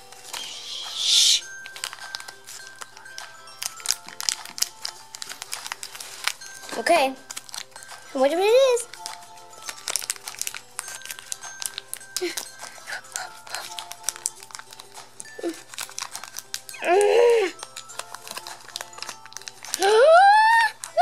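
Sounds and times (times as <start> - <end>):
faint background music: 0.0 - 21.0
plastic wrapper crinkling: 0.0 - 21.0.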